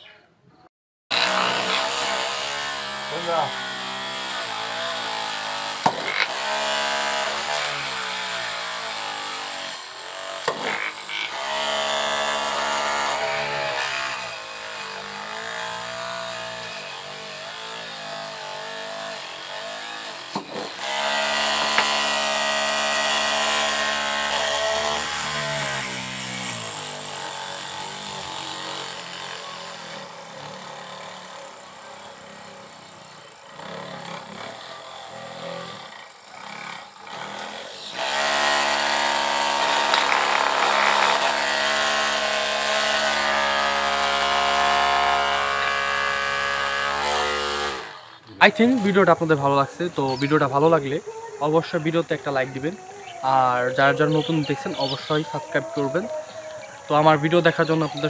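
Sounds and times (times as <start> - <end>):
drill motor whine: 1.1 - 58.0.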